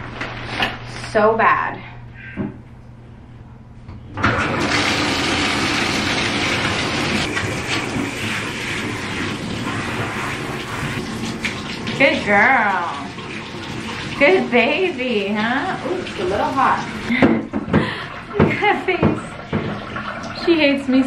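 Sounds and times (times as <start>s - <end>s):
shower sprayer water running: 4.2s - 21.0s.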